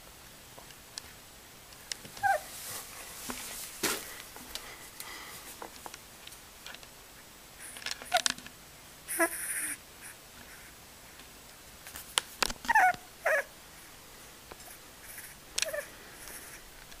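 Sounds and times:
puppy squeaking in sleep: 0:02.2 - 0:02.5, 0:08.0 - 0:08.3, 0:09.1 - 0:09.8, 0:12.7 - 0:13.5, 0:15.1 - 0:16.6.

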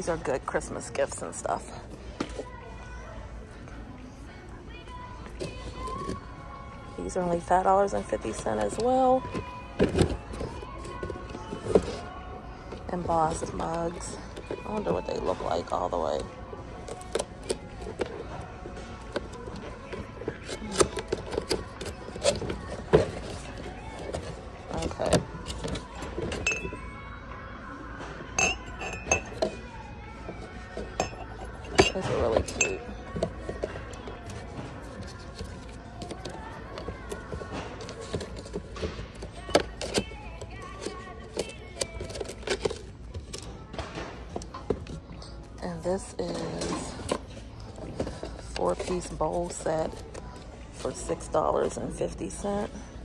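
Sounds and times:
background music: 0:00.0 - 0:53.0
porcelain mugs clinking: 0:26.2 - 0:26.8, 0:28.4 - 0:29.7, 0:30.7 - 0:33.7.

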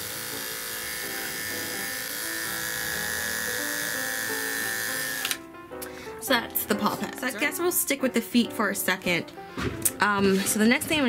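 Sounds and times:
electric pet clipper buzzing: 0:00.0 - 0:05.5.

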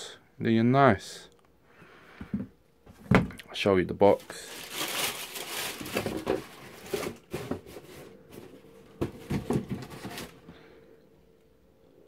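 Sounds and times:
cardboard boxes knocking and rustling: 0:05.8 - 0:10.4.

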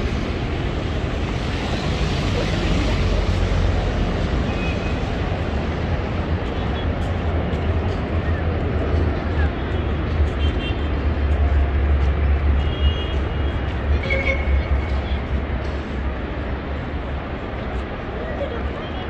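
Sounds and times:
traffic rumble: 0:00.0 - 0:19.0
people's voices: 0:00.6 - 0:04.3, 0:14.4 - 0:19.0.

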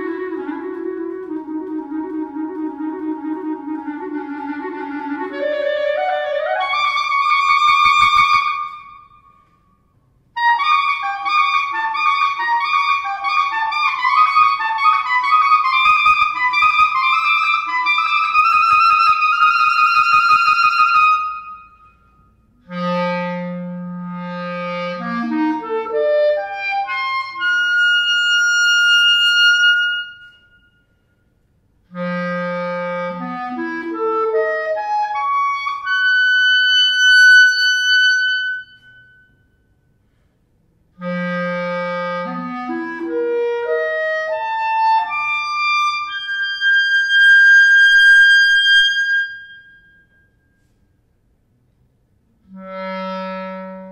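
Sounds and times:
solo clarinet playing: 0:00.0 - 0:09.6, 0:10.4 - 0:30.9, 0:31.9 - 0:39.4, 0:41.0 - 0:50.8, 0:52.3 - 0:53.9.

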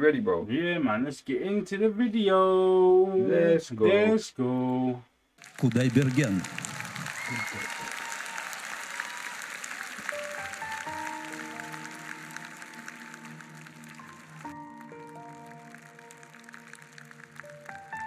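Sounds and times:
audience applauding: 0:05.4 - 0:18.0
soft instrumental music: 0:09.9 - 0:18.0.

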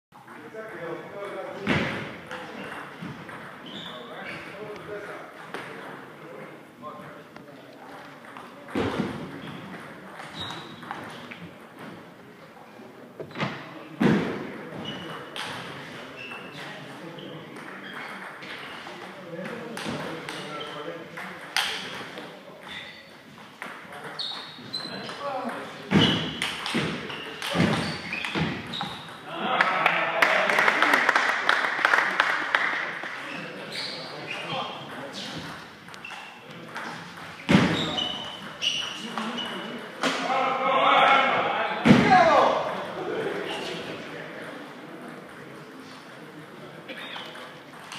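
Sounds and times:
people's voices: 0:23.8 - 0:47.9.

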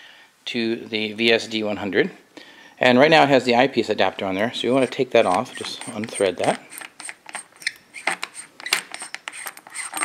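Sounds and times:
metal threads clicking and rubbing: 0:04.7 - 0:10.0.

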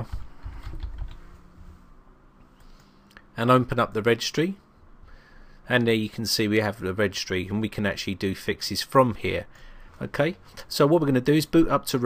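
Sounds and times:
computer keyboard typing: 0:00.5 - 0:01.2.

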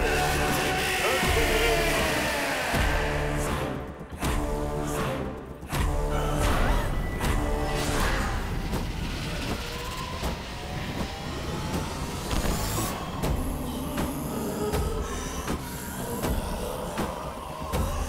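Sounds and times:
heavy low rumbling drone: 0:00.0 - 0:18.0.

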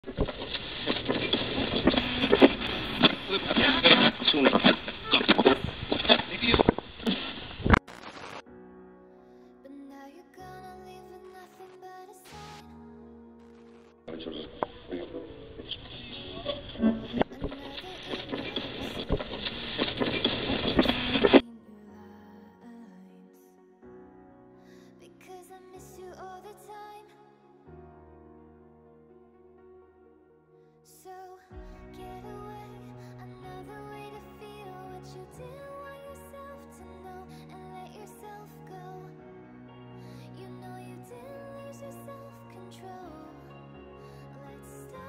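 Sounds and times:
soft music: 0:00.0 - 0:45.0
muffled voices: 0:01.8 - 0:06.6, 0:14.1 - 0:20.1.

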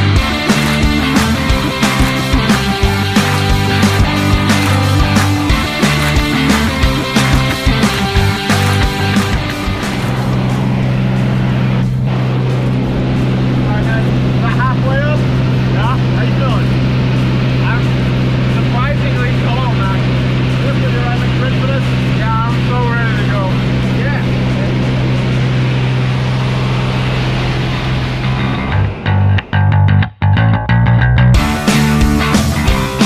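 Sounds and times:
light aircraft engine droning: 0:00.0 - 0:29.6.

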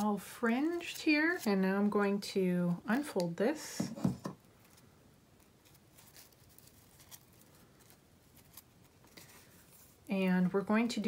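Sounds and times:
crepe paper crinkling and rustling: 0:04.5 - 0:10.1.

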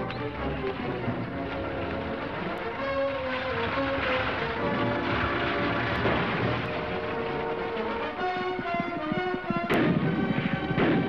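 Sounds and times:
film music: 0:00.0 - 0:11.0
gunshots echoing: 0:01.5 - 0:11.0.

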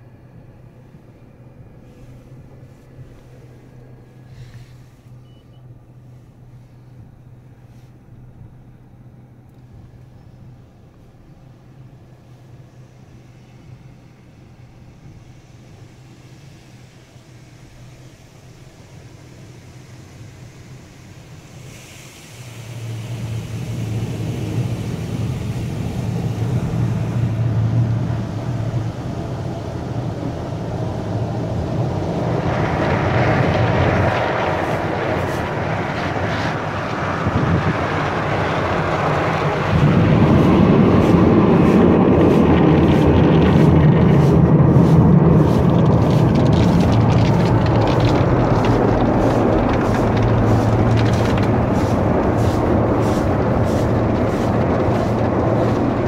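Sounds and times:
low machinery hum: 0:00.0 - 0:56.0
water spraying on car body: 0:00.1 - 0:56.0.

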